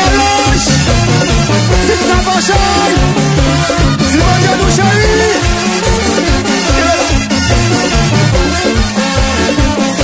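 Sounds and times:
drums beating: 0:00.0 - 0:10.0.

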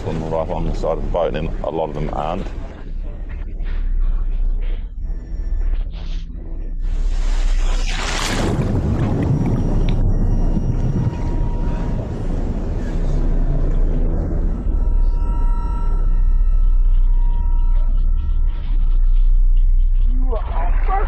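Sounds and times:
low underwater rumble: 0:00.0 - 0:21.0
faint high steady tones: 0:09.1 - 0:21.0.

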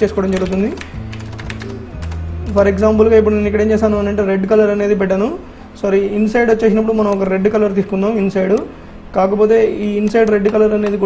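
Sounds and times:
computer keyboard keys tapping: 0:00.0 - 0:02.3, 0:10.0 - 0:11.0
steady low hum: 0:01.7 - 0:06.2.

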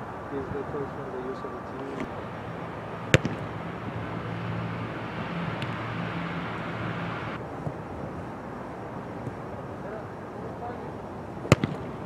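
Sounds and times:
low engine hum: 0:00.0 - 0:07.4
sharp smack: 0:03.1 - 0:03.4, 0:11.5 - 0:11.8.

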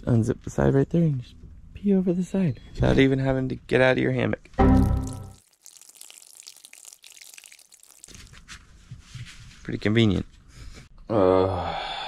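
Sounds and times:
liquid trickling into water: 0:04.7 - 0:08.5.

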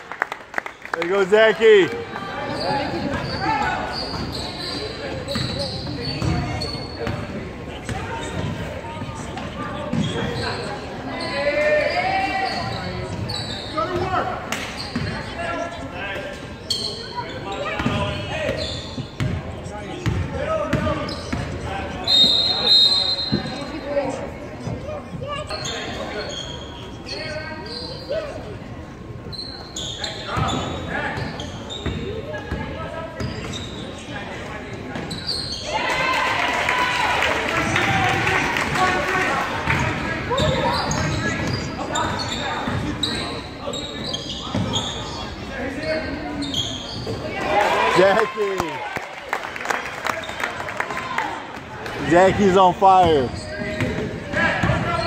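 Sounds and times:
voices echoing in hall: 0:00.8 - 0:55.0
referee's whistle: 0:22.0 - 0:23.6.

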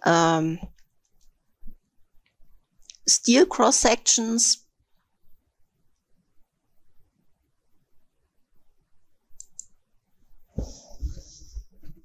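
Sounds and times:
computer mouse clicks: 0:09.4 - 0:09.8.

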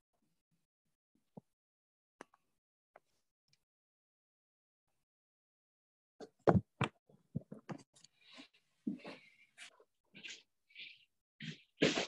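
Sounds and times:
short knocks and thumps: 0:06.3 - 0:07.8.

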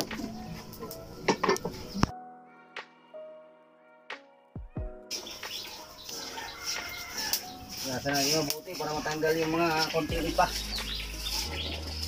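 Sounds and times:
birds chirping: 0:00.0 - 0:02.1, 0:04.9 - 0:12.0.

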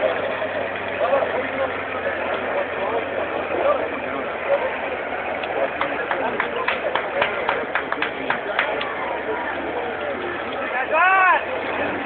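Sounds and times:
car engine working on a climb: 0:00.0 - 0:12.0.

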